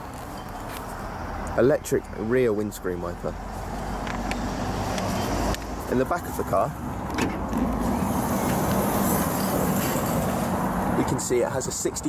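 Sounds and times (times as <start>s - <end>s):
motor vehicle rumble: 0.0s - 11.3s.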